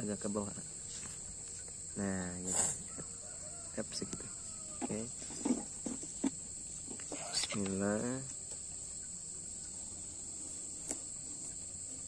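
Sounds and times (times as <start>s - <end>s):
insects chirring: 0.0s - 12.0s.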